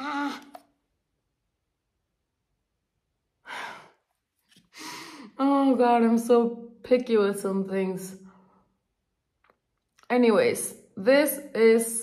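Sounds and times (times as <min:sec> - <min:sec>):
woman sighing: 0:00.0 - 0:00.6.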